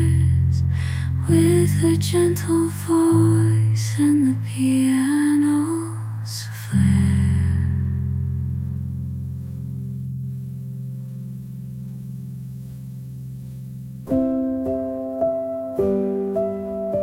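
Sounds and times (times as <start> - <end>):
solo piano: 0.0 - 17.0.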